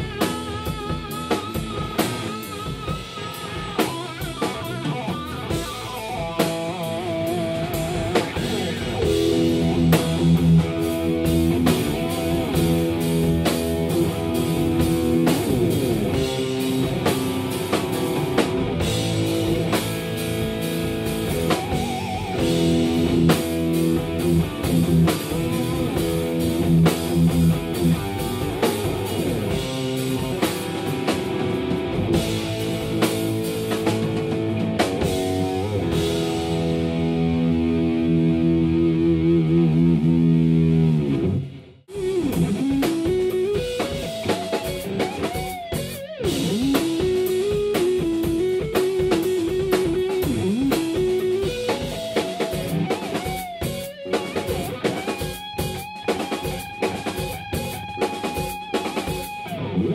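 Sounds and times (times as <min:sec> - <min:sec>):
drum kit: 0:00.0 - 0:59.9
overdriven electric guitar: 0:00.0 - 0:59.9.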